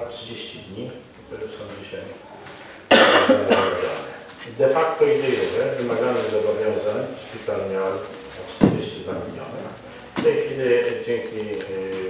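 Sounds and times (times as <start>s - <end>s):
speech: 0.0s - 2.5s, 3.3s - 12.0s
man coughing: 2.9s - 4.0s.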